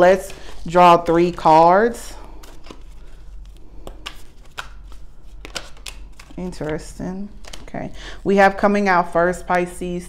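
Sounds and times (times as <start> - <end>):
cards being shuffled: 0.0 - 7.8.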